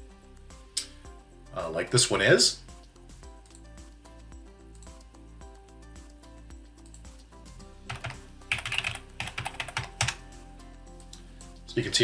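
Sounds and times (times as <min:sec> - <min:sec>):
quiet background music: 0:00.0 - 0:12.0
keyboard typing: 0:07.9 - 0:10.2.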